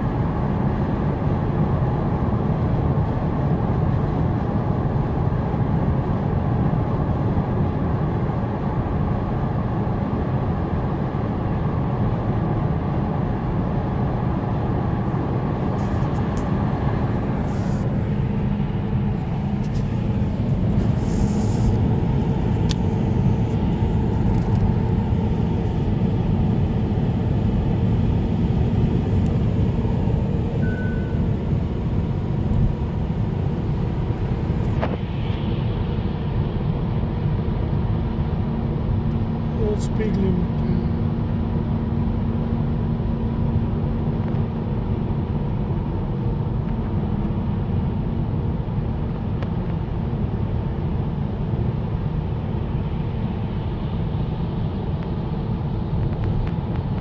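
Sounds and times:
car cabin road noise: 0.0 - 57.0.

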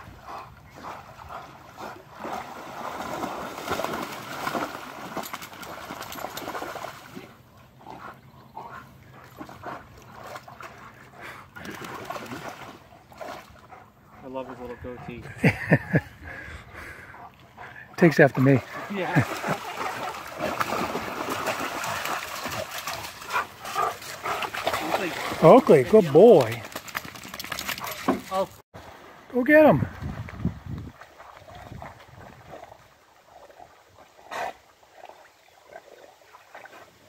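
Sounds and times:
dogs splashing in water: 0.1 - 8.1, 8.7 - 13.9, 17.2 - 29.1.

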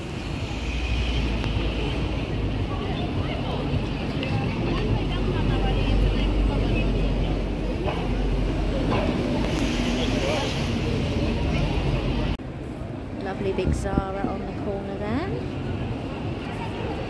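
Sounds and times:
passers-by talking: 0.0 - 17.0
traffic rumble: 0.0 - 17.0.

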